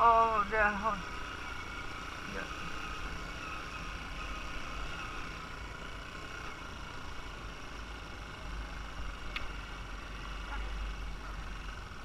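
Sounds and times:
motorbike engine running: 0.0 - 12.0.

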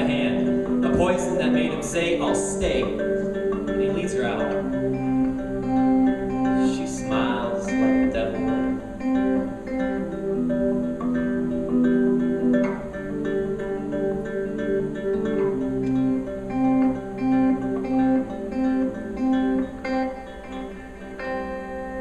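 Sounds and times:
electric guitar picked notes: 0.0 - 22.0.

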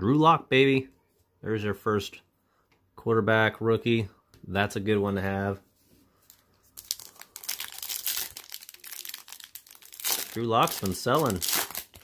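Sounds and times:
foil wrapper crinkling: 6.2 - 12.0.

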